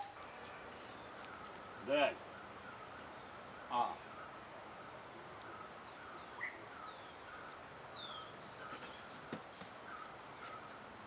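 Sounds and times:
faint outdoor ambience: 0:00.0 - 0:11.0
bird chirps: 0:05.2 - 0:11.0.

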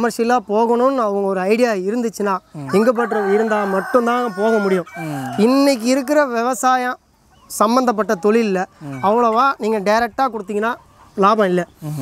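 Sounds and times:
chickens clucking: 0:00.0 - 0:12.0
rooster crowing: 0:02.5 - 0:06.7.

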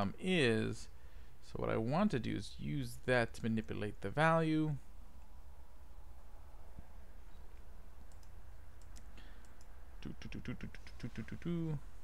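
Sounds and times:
low steady hum: 0:00.0 - 0:12.0
computer keyboard typing: 0:08.0 - 0:09.7.

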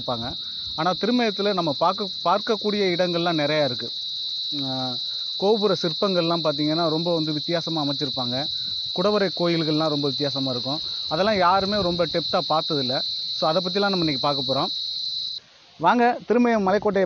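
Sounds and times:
man talking: 0:00.0 - 0:03.9, 0:04.6 - 0:14.7, 0:15.8 - 0:17.0
insects droning: 0:00.0 - 0:17.0.

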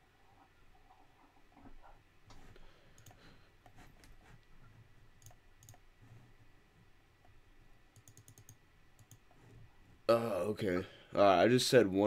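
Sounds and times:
computer mouse clicking: 0:02.3 - 0:04.5, 0:05.1 - 0:05.9, 0:07.2 - 0:09.5.

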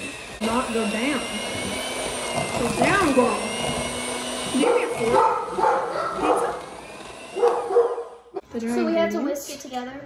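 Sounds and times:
electric hand mixer whining: 0:00.0 - 0:08.9.

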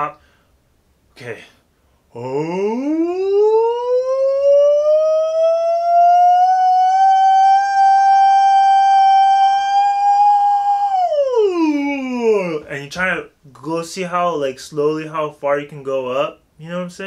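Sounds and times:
man singing vocal glissando: 0:02.2 - 0:12.7.

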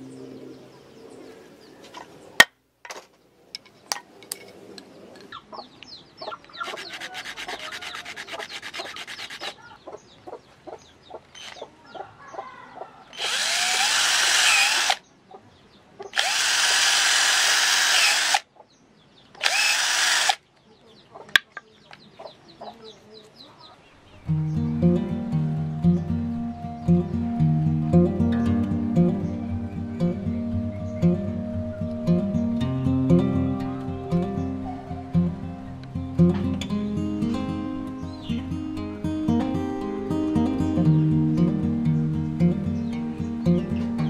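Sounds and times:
blade rasping wooden stick: 0:06.6 - 0:09.6
cordless drill boring into wood: 0:06.6 - 0:09.6, 0:11.4 - 0:11.6, 0:13.1 - 0:15.0, 0:16.2 - 0:18.4, 0:19.4 - 0:20.4.

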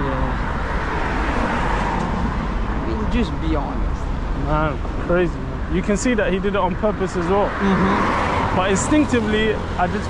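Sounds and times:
low rumble of street: 0:00.0 - 0:10.0
car passing close by: 0:07.2 - 0:10.0.

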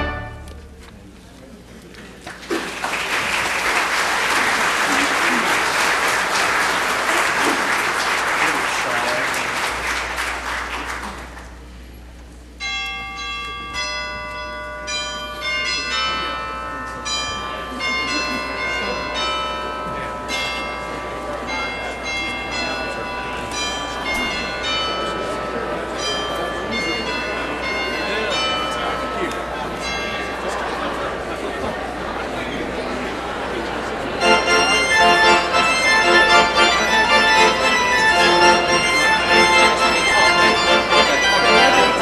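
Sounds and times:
bells ringing: 0:00.0 - 0:00.8, 0:12.6 - 0:31.5, 0:34.2 - 0:42.0
congregation applauding: 0:02.1 - 0:11.7, 0:34.2 - 0:42.0.

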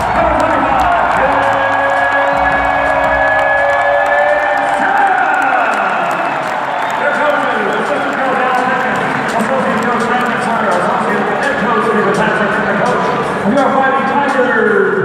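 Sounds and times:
arena crowd cheering and shouting: 0:00.0 - 0:15.0.

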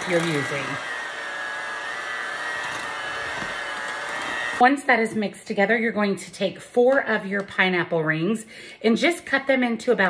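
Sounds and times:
electric hand mixer whining: 0:00.0 - 0:04.7.

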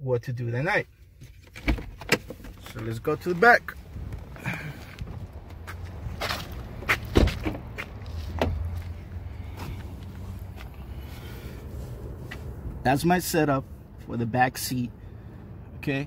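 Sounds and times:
car door shutting: 0:01.5 - 0:07.7
footsteps: 0:02.6 - 0:12.5.

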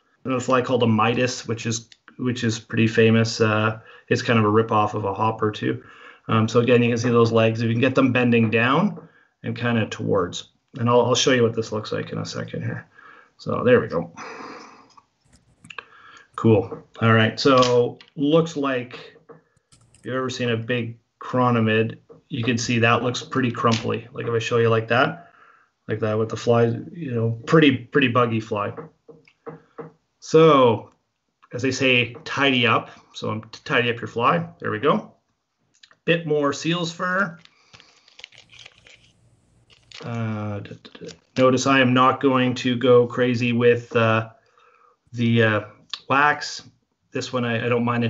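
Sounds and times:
small clicks: 0:14.9 - 0:15.8, 0:37.4 - 0:40.2.

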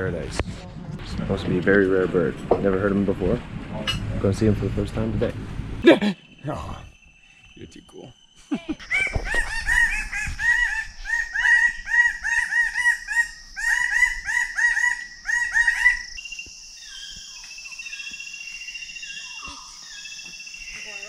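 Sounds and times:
high insect drone: 0:01.2 - 0:21.0
birds calling rapid notes: 0:04.2 - 0:21.0.

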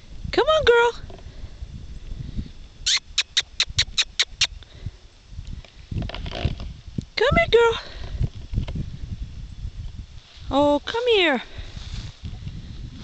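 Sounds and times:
person making kissing squeaks: 0:02.8 - 0:04.6.

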